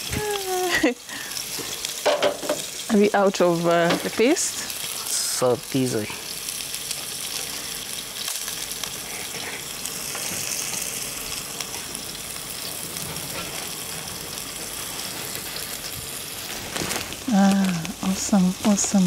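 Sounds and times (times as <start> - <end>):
food sizzling in hot oil: 0.0 - 19.0.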